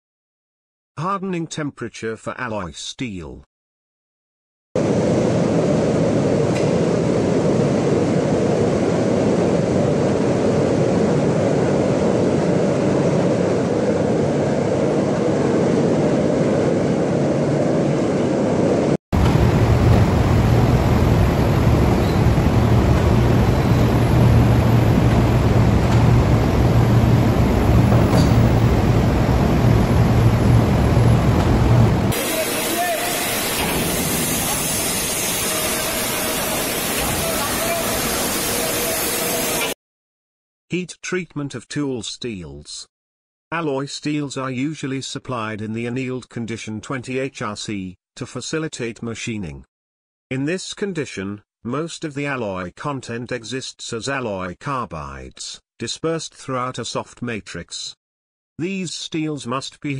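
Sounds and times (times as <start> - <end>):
steady low hum: 4.8 - 32.1
furnaces and machinery running: 4.8 - 39.8.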